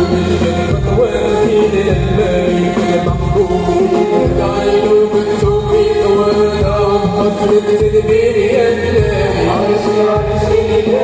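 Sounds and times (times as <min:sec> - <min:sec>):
male vocal group singing: 0:00.0 - 0:11.0.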